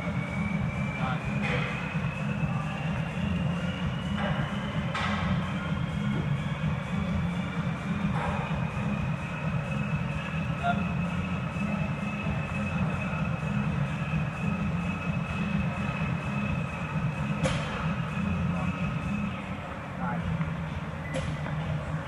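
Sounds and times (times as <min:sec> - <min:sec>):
high whine: 0:00.0 - 0:22.0.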